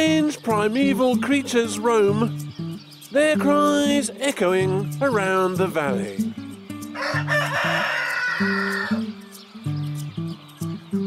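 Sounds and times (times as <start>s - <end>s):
background music: 0.0s - 11.0s
rooster crowing: 6.9s - 9.1s.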